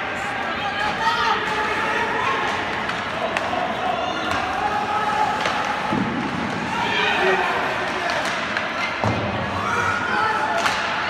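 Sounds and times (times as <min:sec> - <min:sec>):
echoing voices and shouts: 0:00.0 - 0:11.0
hockey stick and puck clacks: 0:00.9 - 0:06.7, 0:07.8 - 0:09.4, 0:10.5 - 0:11.0.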